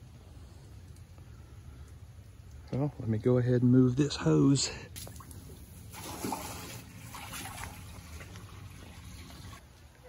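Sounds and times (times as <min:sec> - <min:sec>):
water splashing into basin: 0:05.0 - 0:09.6.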